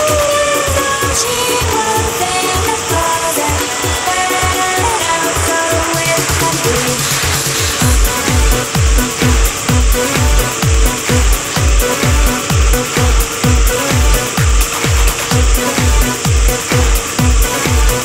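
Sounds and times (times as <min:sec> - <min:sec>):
electronic dance music: 0:00.0 - 0:18.0
steady kick drum: 0:00.0 - 0:18.0.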